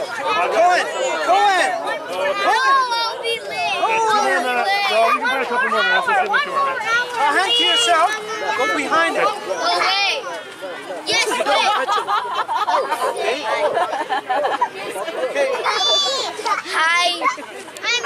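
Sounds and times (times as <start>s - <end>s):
young children chattering: 0.0s - 18.0s.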